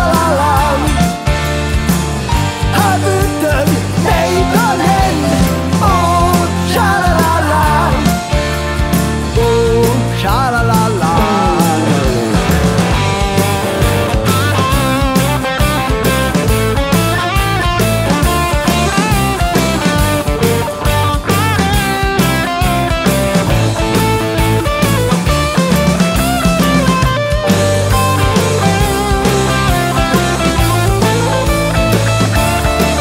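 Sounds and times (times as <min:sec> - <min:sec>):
bass guitar: 0:00.0 - 0:33.0
drum kit: 0:00.0 - 0:33.0
electric guitar lead: 0:00.0 - 0:33.0
rhythm guitar: 0:00.0 - 0:33.0.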